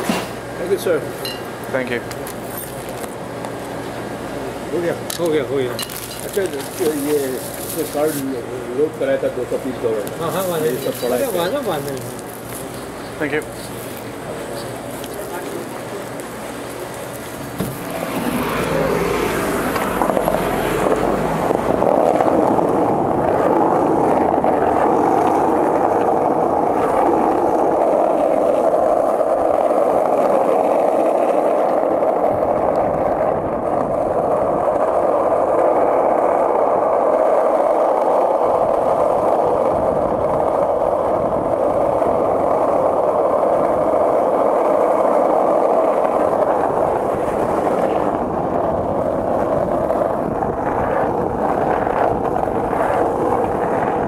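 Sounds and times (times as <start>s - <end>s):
skateboard wheels rolling on asphalt: 0.0s - 54.0s.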